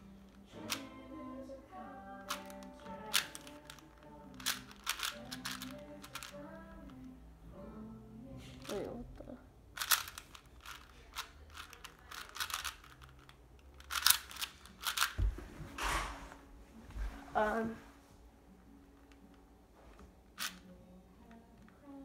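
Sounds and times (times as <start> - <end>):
puzzle cube clicking turns: 0.6 - 0.9, 2.2 - 7.0, 8.6 - 8.8, 9.8 - 15.2, 20.4 - 20.6.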